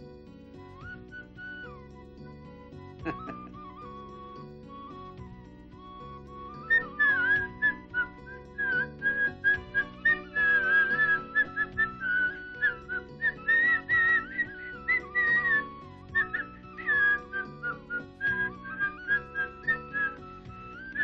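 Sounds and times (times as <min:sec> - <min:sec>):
held low accompaniment notes: 0:00.0 - 0:21.0
ornamented high lead melody: 0:00.0 - 0:21.0.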